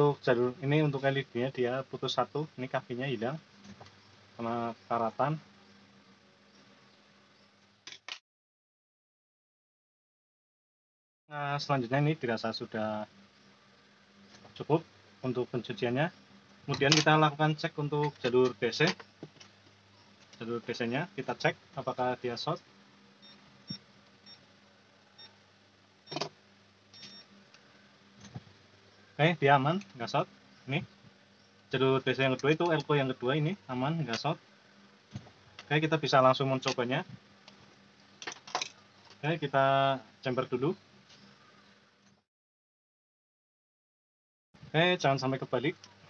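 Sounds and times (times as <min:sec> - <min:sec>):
steady low hum: 0:00.0 - 0:07.8, 0:11.4 - 0:42.1
multimeter short high beeps: 0:27.0 - 0:27.3.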